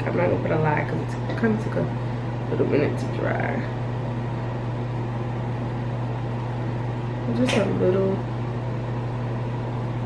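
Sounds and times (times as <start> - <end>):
mechanical hum with hiss: 0.0 - 10.0.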